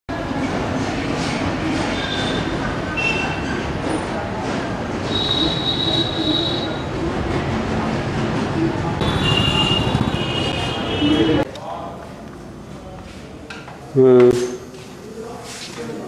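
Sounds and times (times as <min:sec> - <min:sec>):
busy street din: 0:00.1 - 0:16.0
high squeals: 0:05.1 - 0:07.0.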